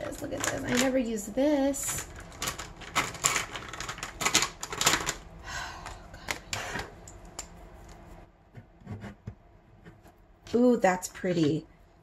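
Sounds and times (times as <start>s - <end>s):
plastic pens clicking and tapping: 1.8s - 5.2s.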